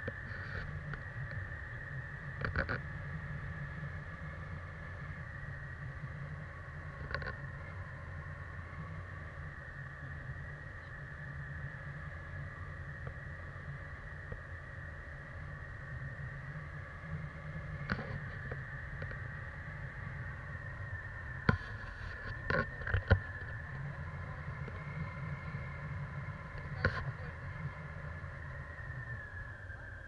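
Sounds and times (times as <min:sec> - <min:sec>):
wind rush on microphone: 0:00.0 - 0:30.0.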